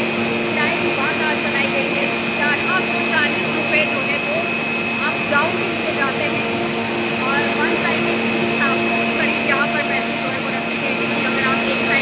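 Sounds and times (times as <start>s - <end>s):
high-pitched machine whine: 0.0s - 12.0s
machinery low hum: 0.0s - 12.0s.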